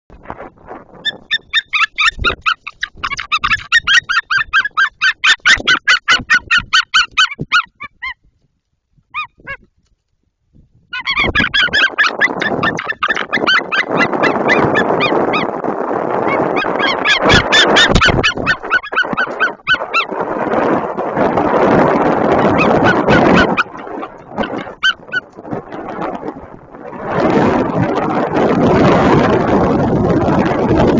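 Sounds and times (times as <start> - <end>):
rushing wind noise on microphone: 0.1 - 30.9
eagle yelping calls: 1.0 - 8.2, 9.1 - 9.6, 10.9 - 15.5, 16.2 - 20.1, 22.4 - 25.3.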